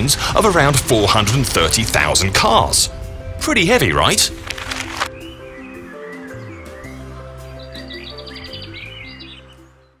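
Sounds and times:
bass and chord background music: 0.0s - 10.0s
bird-like chirps and trill: 5.1s - 10.0s.

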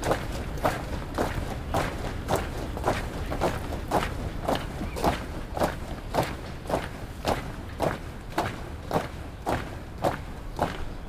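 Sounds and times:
boots marching on stone: 0.0s - 11.0s.

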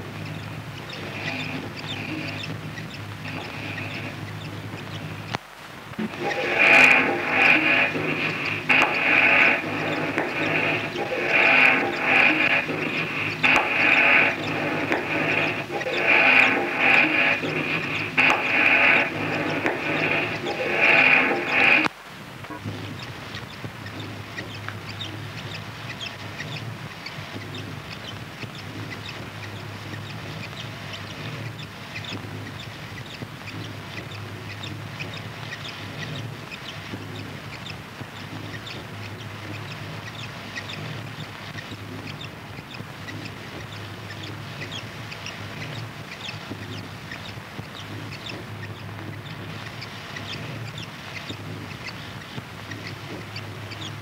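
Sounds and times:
dense irregular crackling: 0.0s - 54.0s
steady low hum: 0.0s - 54.0s.

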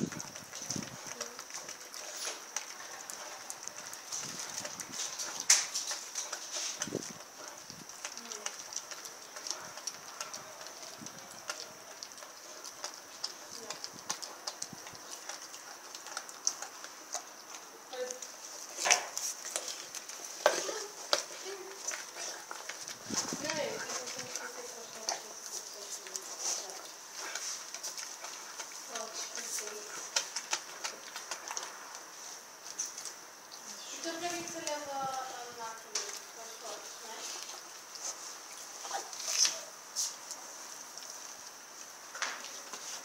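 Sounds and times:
dog chewing raw meat: 0.1s - 43.0s.

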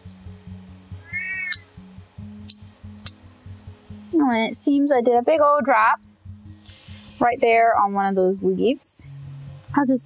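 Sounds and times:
background music with bass line: 0.0s - 10.0s
cat meowing: 1.0s - 1.6s.

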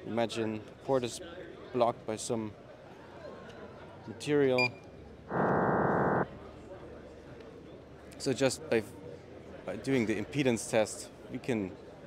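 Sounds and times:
loudspeaker electronic test tones: 5.3s - 6.2s.

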